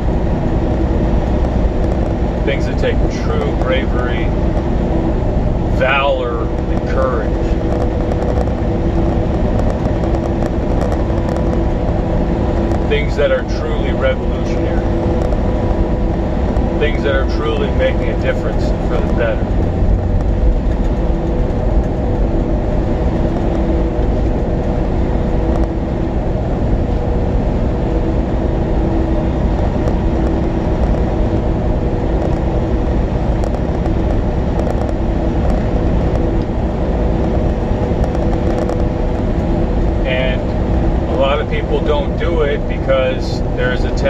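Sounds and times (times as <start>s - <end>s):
constant hum: 0.0s - 44.0s
truck engine and road rumble: 0.0s - 44.0s.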